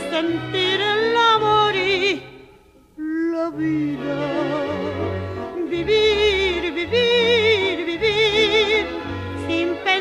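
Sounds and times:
woman singing with vibrato: 0:00.0 - 0:10.0.

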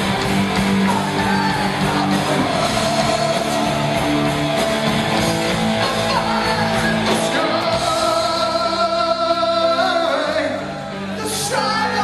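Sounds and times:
distorted electric guitars: 0:00.0 - 0:12.0
heavy metal band playing live: 0:00.0 - 0:12.0.

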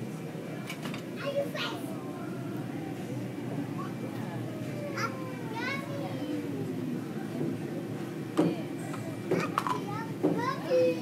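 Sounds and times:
young children calling and babbling: 0:01.1 - 0:11.0.

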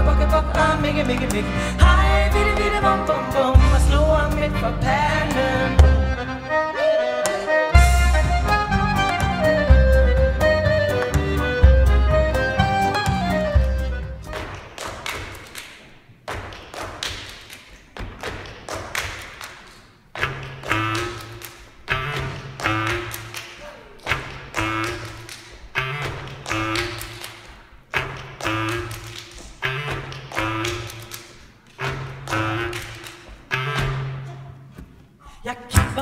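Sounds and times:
accordion bass notes and chords: 0:00.0 - 0:14.6
feet stamping on wooden stage: 0:07.8 - 0:21.0
hands clapping: 0:08.4 - 0:34.1.

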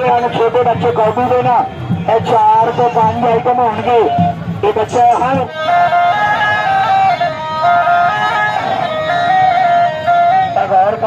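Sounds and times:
reed pipe melody: 0:00.0 - 0:11.0.

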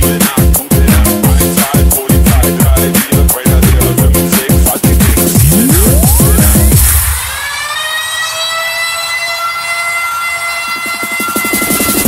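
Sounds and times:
rising siren-like synth tone: 0:05.4 - 0:12.0.

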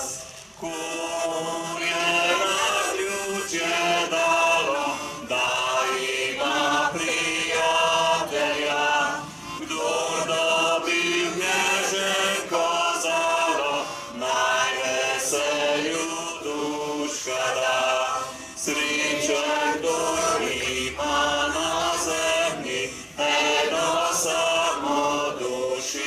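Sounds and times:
group singing an anthem: 0:00.0 - 0:26.0.

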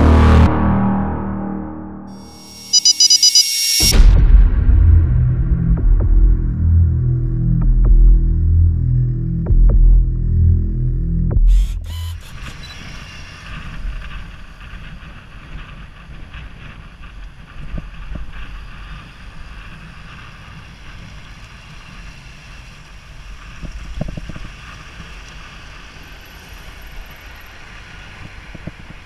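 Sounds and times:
intro music: 0:00.0 - 0:11.9
road traffic noise: 0:11.6 - 0:16.1, 0:18.1 - 0:29.0.

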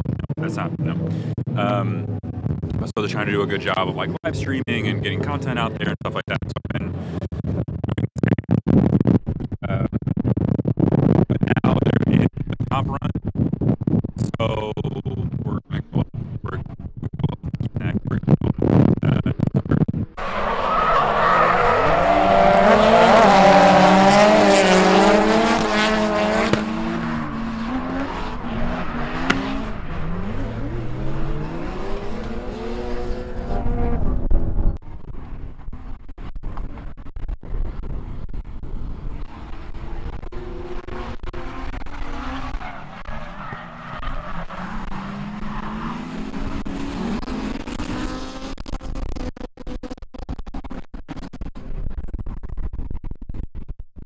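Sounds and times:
car engines revving: 0:00.0 - 0:51.8.

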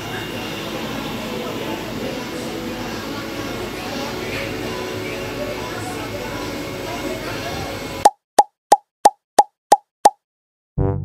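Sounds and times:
noisy background: 0:00.0 - 0:08.0
brass music: 0:10.8 - 0:11.0.

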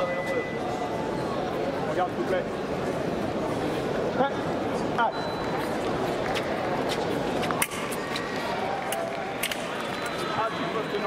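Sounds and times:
voices in a large hall: 0:00.0 - 0:11.0
fencing blades clicking and tapping: 0:07.4 - 0:08.1, 0:08.8 - 0:09.9.

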